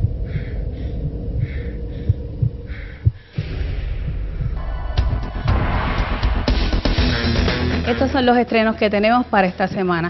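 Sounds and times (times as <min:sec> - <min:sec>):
low pulsing thumps: 0:00.0 - 0:10.0.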